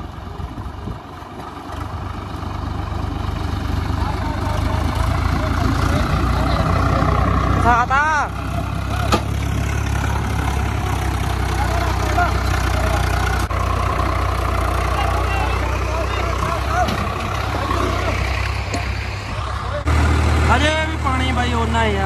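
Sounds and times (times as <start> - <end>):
vehicle engine rumbling: 0.0 - 22.0
people's voices: 3.8 - 22.0.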